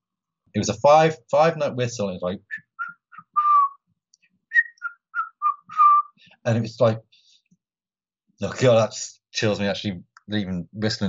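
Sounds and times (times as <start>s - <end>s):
man whistling a tune: 2.5s - 3.8s, 4.5s - 6.2s.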